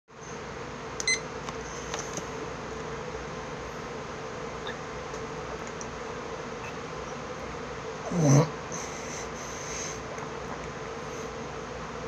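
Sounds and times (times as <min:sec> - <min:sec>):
low room hum: 0:00.1 - 0:12.0.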